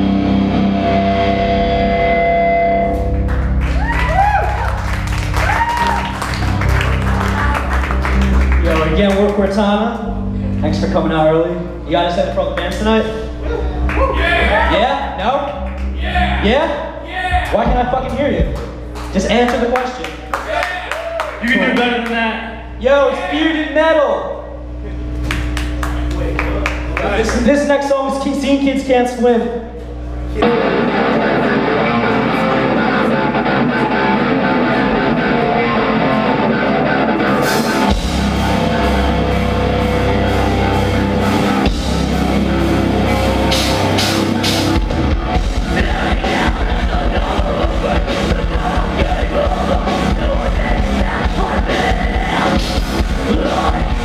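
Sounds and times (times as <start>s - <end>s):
distorted electric guitars: 0.0s - 20.2s, 24.4s - 54.0s
amplifier hum: 0.0s - 54.0s
voices shouting and talking: 13.4s - 19.3s
heavy drums: 16.0s - 19.8s, 36.9s - 54.0s
hand claps: 18.0s - 22.2s, 25.2s - 27.5s.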